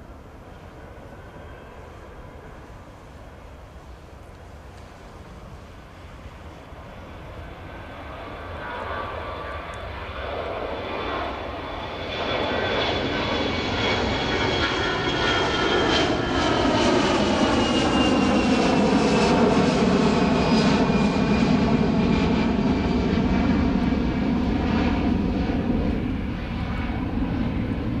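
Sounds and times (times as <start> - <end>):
jet engines at takeoff power: 0.0 - 28.0.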